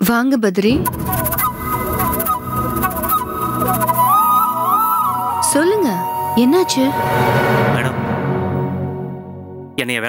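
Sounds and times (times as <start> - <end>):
drama score with held tones: 0.7 - 10.0.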